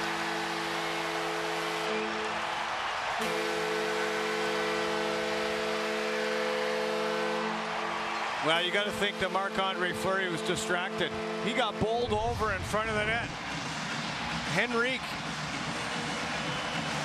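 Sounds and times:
arena goal horn: 0.0 - 2.4, 3.2 - 12.1
crowd cheering: 0.0 - 17.0.

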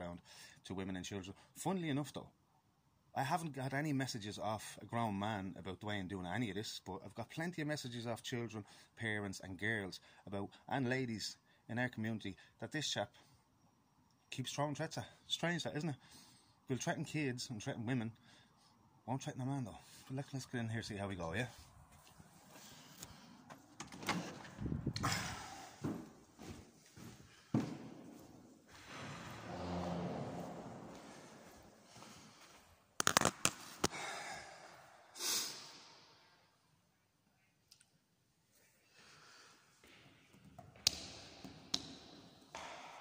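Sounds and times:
doors banging shut: 23.8 - 24.7
footsteps: 25.8 - 33.9.

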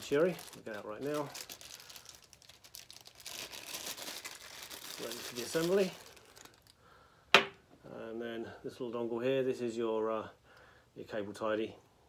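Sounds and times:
plastic bag crinkling: 0.0 - 6.8.

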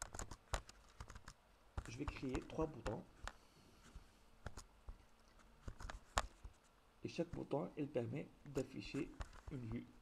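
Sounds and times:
computer mouse clicks: 0.0 - 3.4, 4.4 - 6.6.

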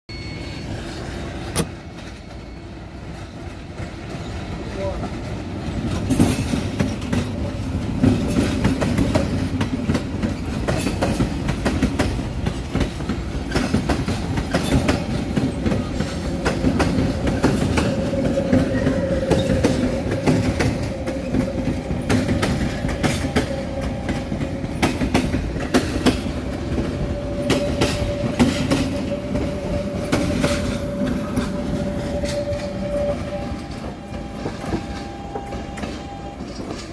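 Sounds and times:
train hum: 0.1 - 36.9
train wheels clattering over rail joints: 3.3 - 36.9.

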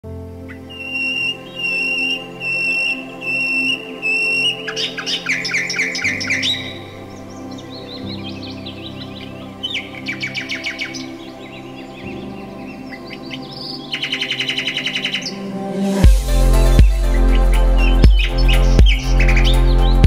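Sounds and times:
soft background music: 0.0 - 20.0
songbirds chirping: 0.0 - 20.0
rapid bird trill: 0.5 - 20.0.

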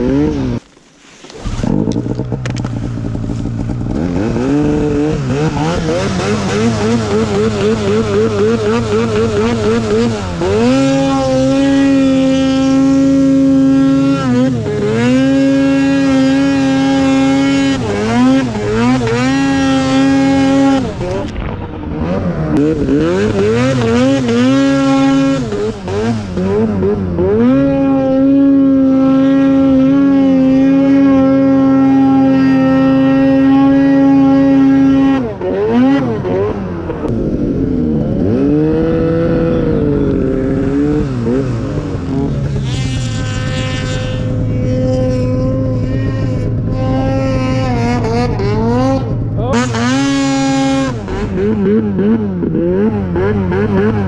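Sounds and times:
snowmobile engine at high revs: 0.0 - 54.0.

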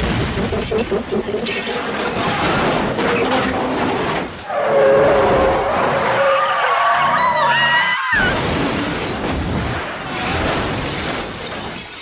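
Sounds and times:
crash wreckage clattering: 0.0 - 4.5, 8.2 - 12.0
woman screaming: 7.0 - 8.3.

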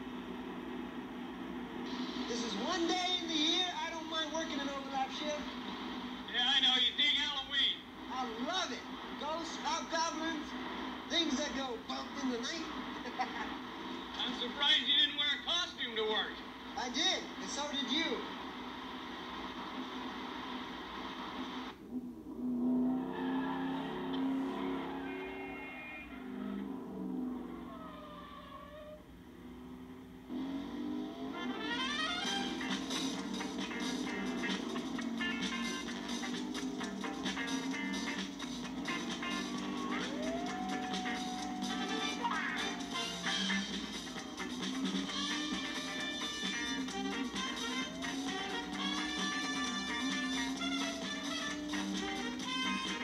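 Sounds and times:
low engine and traffic hum: 0.0 - 53.0
brass music: 31.3 - 53.0.

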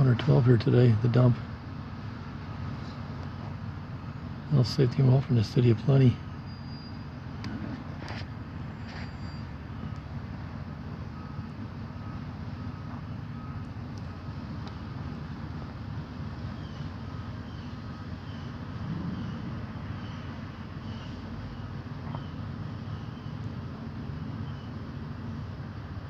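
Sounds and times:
vehicle engine idling: 0.0 - 26.0.

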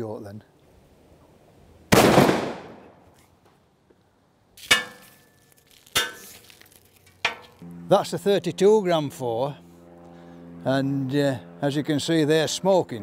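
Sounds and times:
shotgun blast: 1.9 - 3.0.

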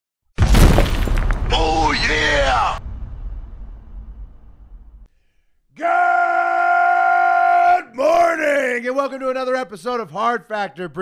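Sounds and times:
loud crash: 0.4 - 5.1
drawn-out shouted voice: 5.7 - 8.6.

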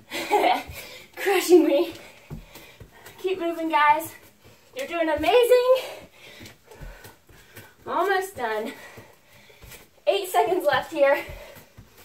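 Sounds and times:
woman breathing hard: 0.0 - 1.2, 1.9 - 3.2, 5.8 - 7.8, 8.7 - 10.0.

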